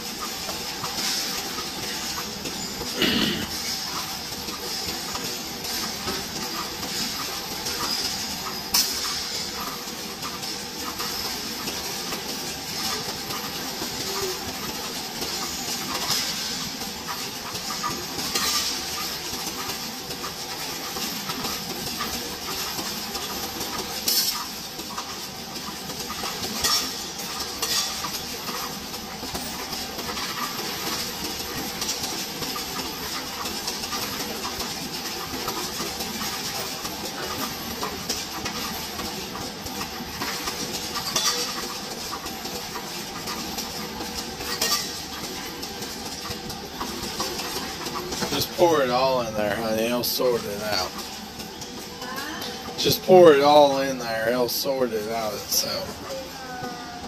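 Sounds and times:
coin-counting machine rattling: 0:00.0 - 0:56.0.

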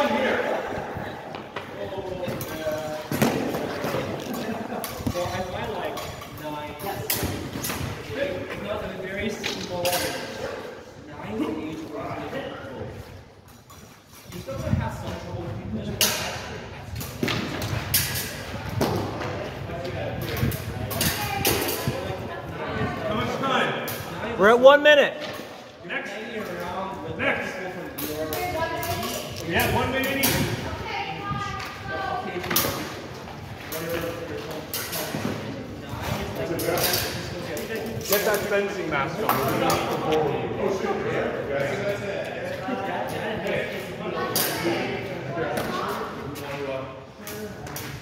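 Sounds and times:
people talking: 0:00.0 - 0:13.0, 0:33.7 - 0:47.9.

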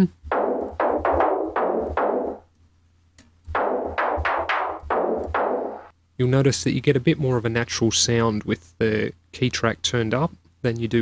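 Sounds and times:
filtered snare drum hits: 0:00.3 - 0:02.4, 0:03.5 - 0:05.9.

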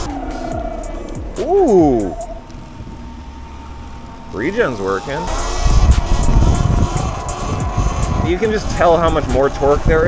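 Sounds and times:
faint electric motor whine: 0:00.0 - 0:10.0
wind on microphone: 0:05.3 - 0:10.0.

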